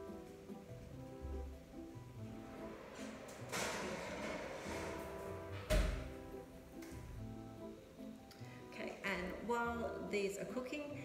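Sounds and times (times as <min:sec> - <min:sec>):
light background music: 0:00.0 - 0:11.0
dish scraping into oven: 0:02.3 - 0:06.4
oven door shutting thud: 0:02.5 - 0:06.4.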